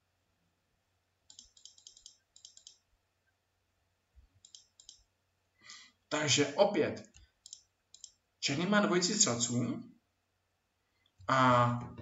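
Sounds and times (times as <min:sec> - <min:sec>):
computer clicking: 0:01.3 - 0:02.9, 0:04.4 - 0:05.1, 0:07.0 - 0:08.2.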